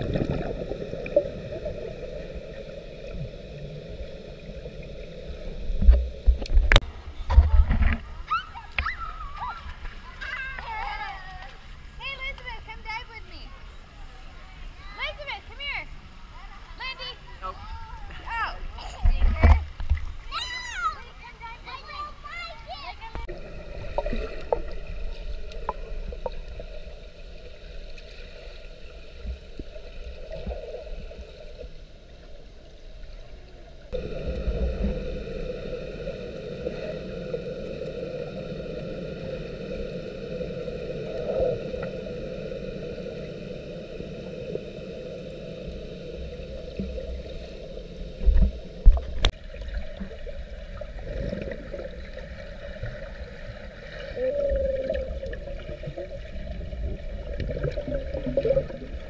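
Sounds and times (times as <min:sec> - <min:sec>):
underwater churning water: 0:00.0 - 0:08.2, 0:23.2 - 0:59.0
heavy thumps underwater: 0:48.2 - 0:49.4.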